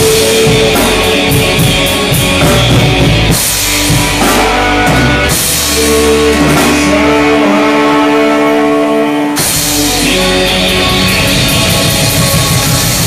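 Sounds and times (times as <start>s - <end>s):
drum kit: 0.0s - 13.0s
electric bass: 0.0s - 13.0s
electric guitar: 0.0s - 13.0s.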